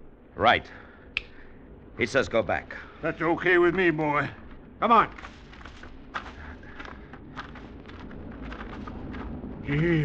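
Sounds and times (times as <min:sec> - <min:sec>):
footsteps crunching through undergrowth: 0:03.7 - 0:09.6.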